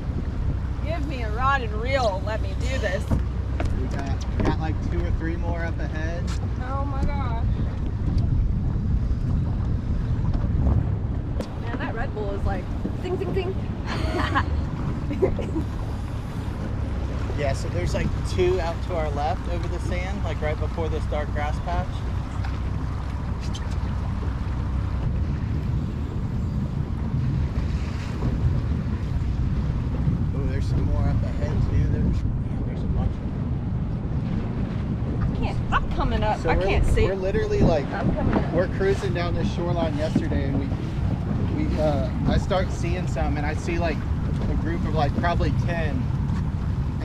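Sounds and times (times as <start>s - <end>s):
boat running noise: 0.0s - 47.0s
water washing around hull: 0.0s - 47.0s
wind buffeting microphone: 0.0s - 47.0s.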